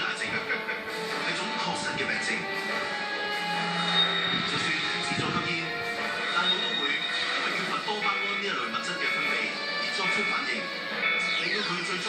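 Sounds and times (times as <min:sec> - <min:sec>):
background music: 0:00.0 - 0:12.0
narrator speaking: 0:04.5 - 0:10.7.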